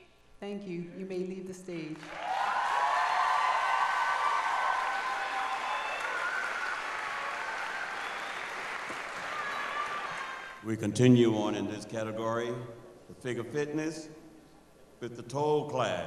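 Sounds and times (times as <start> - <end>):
audience applauding: 2.0 - 10.6.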